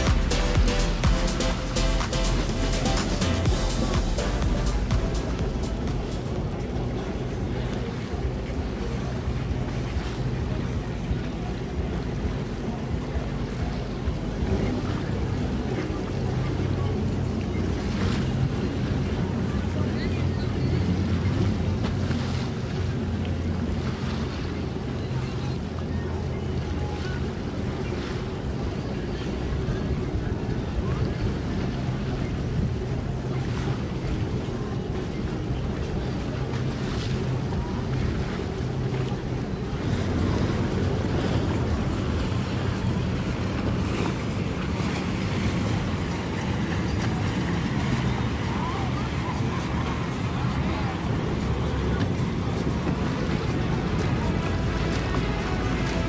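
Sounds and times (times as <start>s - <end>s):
boat engine idling: 0.0s - 56.0s
water lapping: 0.0s - 56.0s
wind on microphone: 0.0s - 56.0s.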